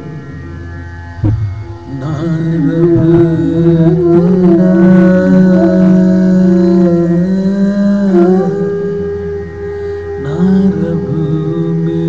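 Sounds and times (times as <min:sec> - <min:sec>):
sustained musical accompaniment: 0:00.0 - 0:12.0
man singing long held notes: 0:01.9 - 0:12.0.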